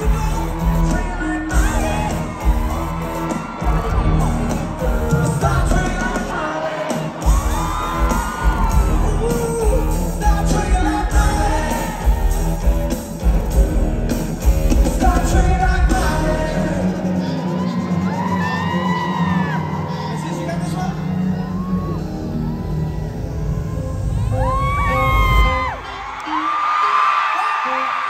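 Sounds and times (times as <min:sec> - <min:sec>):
crowd screaming and whooping: 0:00.0 - 0:28.0
live pop band through pa: 0:00.0 - 0:28.0.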